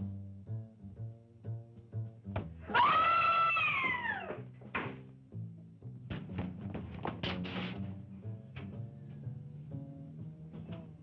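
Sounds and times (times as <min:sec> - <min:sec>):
loud high cry: 0:02.7 - 0:04.4.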